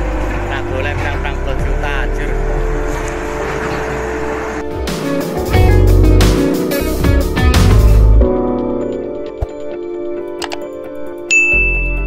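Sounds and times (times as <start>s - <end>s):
heavy engine humming: 0.0s - 8.2s.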